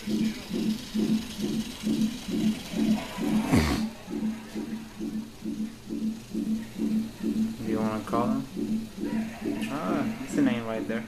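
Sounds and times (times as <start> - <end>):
doppler heartbeat pulse: 0.0 - 11.0.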